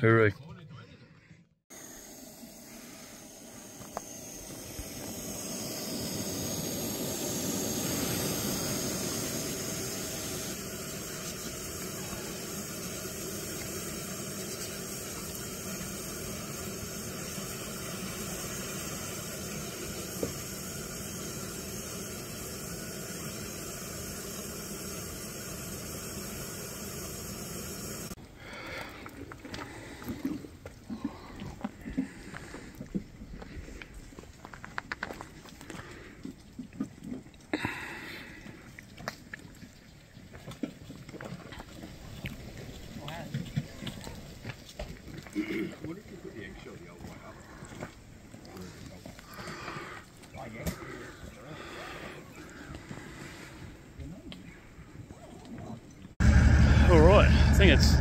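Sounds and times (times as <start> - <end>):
steady rushing noise: 2.6 - 13.6, 56.2 - 58.0.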